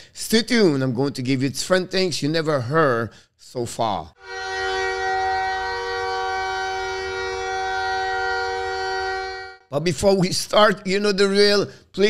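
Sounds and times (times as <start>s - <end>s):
goal horn blast: 4.2s - 9.7s.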